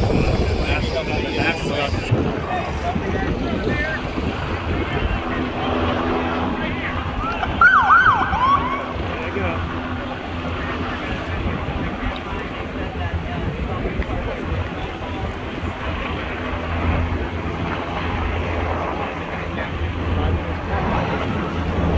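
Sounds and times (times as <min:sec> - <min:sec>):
low engine drone: 0:00.0 - 0:21.9
wind on microphone: 0:00.0 - 0:21.9
emergency siren yelping: 0:07.1 - 0:09.2.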